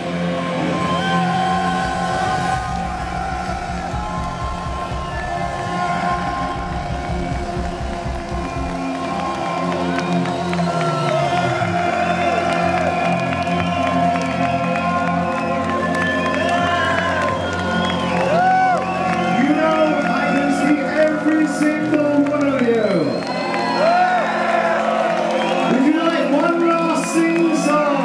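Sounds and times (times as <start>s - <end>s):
crowd cheering and whistling: 0.0s - 28.0s.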